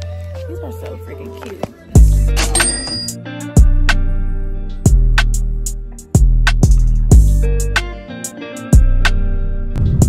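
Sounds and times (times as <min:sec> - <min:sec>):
background music: 0:00.0 - 0:10.0
cash register bell ring: 0:02.4 - 0:03.2
heavy bass drum hits: 0:09.8 - 0:10.0.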